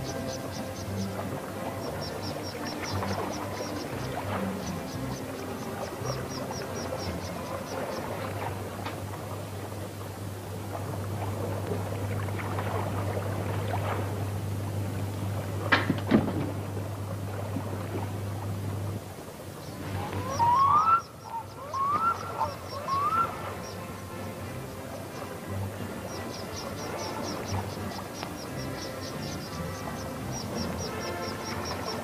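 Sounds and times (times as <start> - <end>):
steady low hum: 0.0 - 32.0
bird calling rising notes: 19.6 - 23.9.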